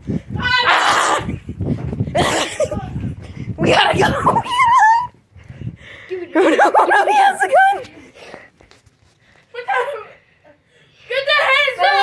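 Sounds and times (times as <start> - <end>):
children squealing and laughing: 0.4 - 1.4, 3.6 - 5.2, 6.3 - 8.0, 9.6 - 10.2.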